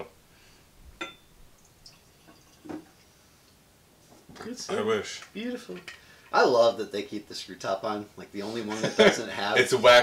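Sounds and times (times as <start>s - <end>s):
glass clink: 1.0s - 2.8s
liquid dripping into glass: 1.0s - 2.9s.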